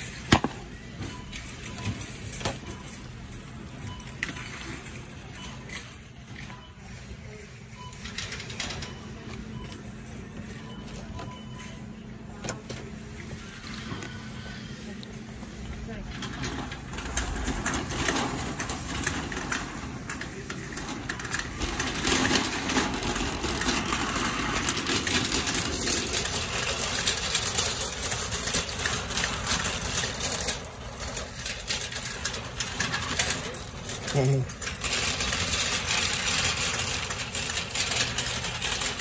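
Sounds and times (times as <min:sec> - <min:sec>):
shopping cart rolling on concrete: 0:00.0 - 0:39.0.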